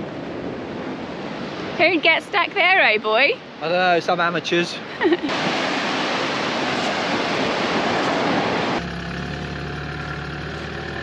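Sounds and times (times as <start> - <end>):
waves washing on beach: 0.0 - 8.8.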